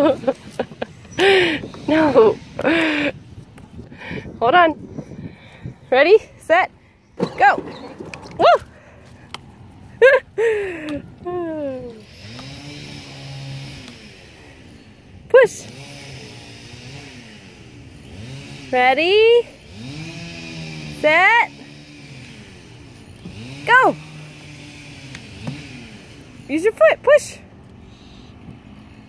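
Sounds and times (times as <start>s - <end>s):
drawn-out exclamation: 1.2s - 3.2s, 7.2s - 9.0s, 23.3s - 27.5s
excited laughter: 9.9s - 10.9s
electric motor whirring: 11.9s - 15.0s, 19.6s - 26.5s.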